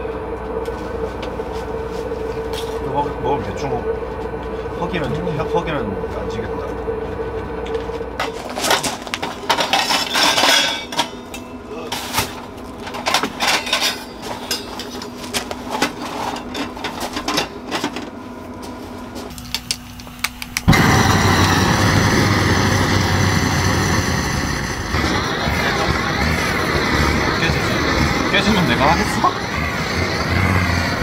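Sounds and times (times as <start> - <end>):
metal pipes clinking: 8.2 - 18.0
gas torch flame hissing: 19.4 - 31.0.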